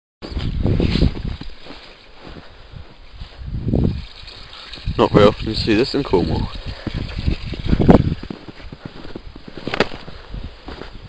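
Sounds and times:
wind buffeting microphone: 0:00.3 - 0:11.0.

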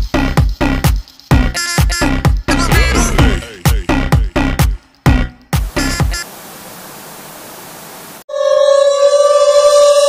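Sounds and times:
electronic dance music: 0:02.5 - 0:04.8
static hiss: 0:05.6 - 0:08.2.

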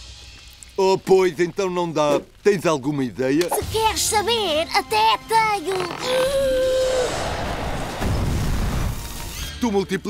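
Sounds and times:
roar of flames: 0:06.5 - 0:09.1.

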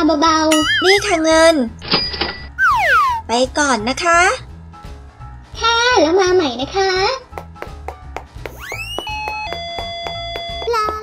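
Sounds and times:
rising swoop sound effect: 0:02.6 - 0:03.2
background music with steady beat: 0:06.4 - 0:11.0.

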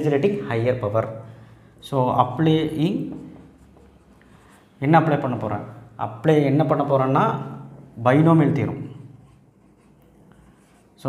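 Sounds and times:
marker squeaking on whiteboard: 0:03.0 - 0:04.6, 0:08.8 - 0:11.0.

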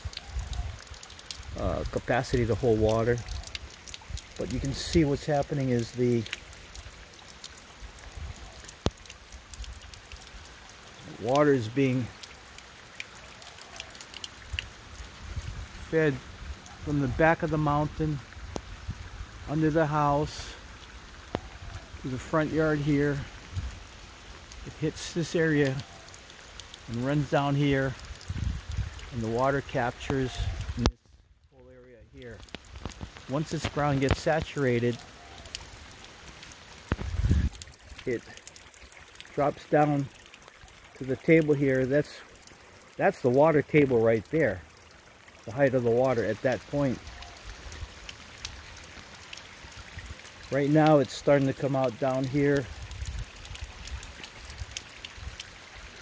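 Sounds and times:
faint outdoor hiss: 0:00.0 - 0:56.0
water dripping: 0:00.0 - 0:56.0
small ticks: 0:06.2 - 0:10.9, 0:12.1 - 0:15.5, 0:32.4 - 0:34.3.

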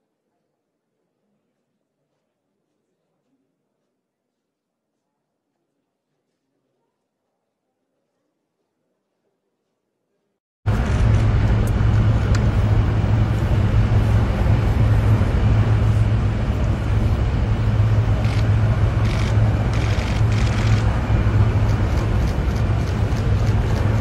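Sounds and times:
low mechanical rumble: 0:10.7 - 0:24.0.

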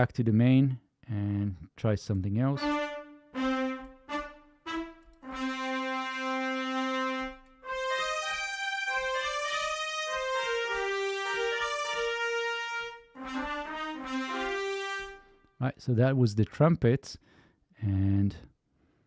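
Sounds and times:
trumpet notes and chords: 0:02.4 - 0:15.6.

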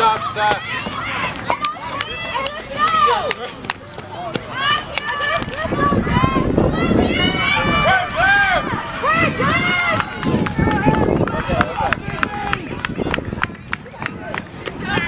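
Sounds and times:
spectators shouting encouragement: 0:00.0 - 0:15.0.

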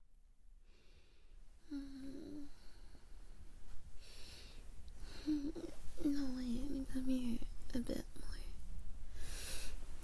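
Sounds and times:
woman humming softly: 0:01.6 - 0:02.8, 0:05.0 - 0:07.5.

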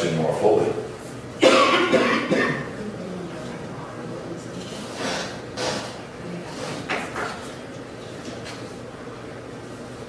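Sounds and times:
person coughing: 0:01.4 - 0:02.7.

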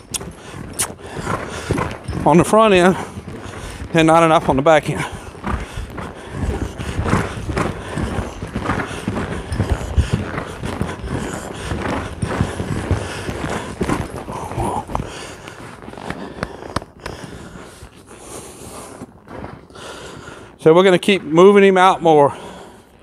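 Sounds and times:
horse hooves thudding on sand: 0:00.0 - 0:23.0.

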